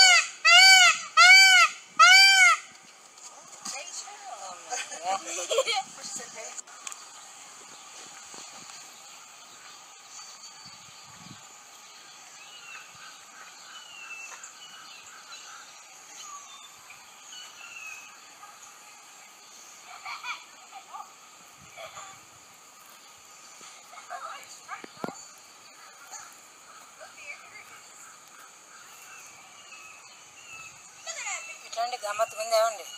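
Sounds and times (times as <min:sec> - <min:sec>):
steady high hiss: 0:00.0 - 0:32.9.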